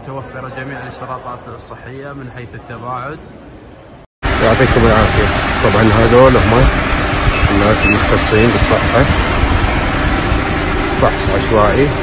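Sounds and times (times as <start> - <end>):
car engine idling: 4.2 - 12.0.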